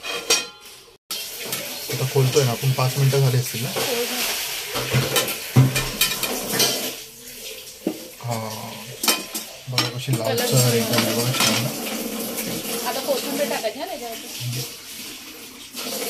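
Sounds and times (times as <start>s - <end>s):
frying sizzle: 0.0s - 16.0s.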